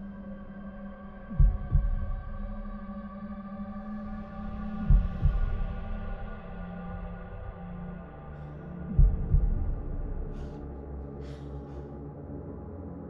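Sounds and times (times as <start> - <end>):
slow heartbeat: 1.2 - 11.9.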